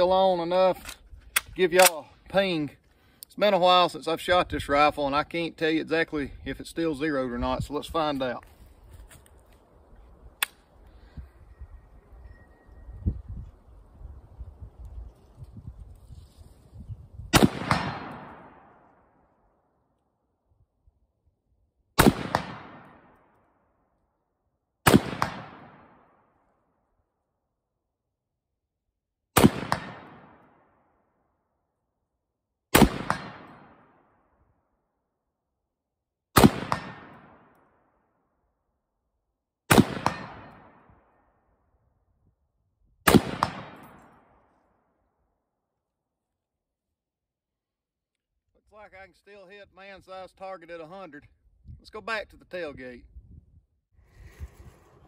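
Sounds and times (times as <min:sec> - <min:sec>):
rifle shots with echo: 0:01.7 - 0:02.1, 0:17.3 - 0:19.0, 0:22.0 - 0:23.3, 0:24.8 - 0:26.3, 0:29.4 - 0:30.7, 0:32.7 - 0:34.1, 0:36.4 - 0:37.6, 0:39.7 - 0:41.2, 0:43.0 - 0:44.5.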